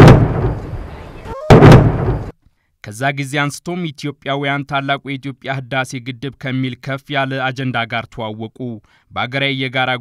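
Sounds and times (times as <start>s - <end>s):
loud sudden bursts: 0.0s - 0.9s, 1.5s - 2.3s.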